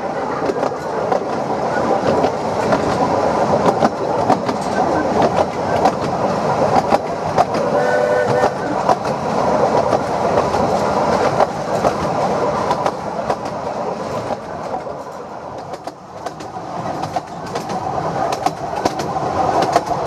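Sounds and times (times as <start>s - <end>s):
train carriage rumble and rattle: 0.0s - 20.0s
wheels clicking over rail joints: 0.0s - 20.0s.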